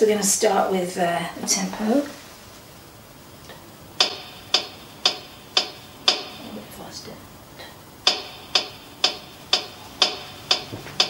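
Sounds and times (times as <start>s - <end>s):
metronome clicks: 4.0s - 6.6s, 8.0s - 11.0s.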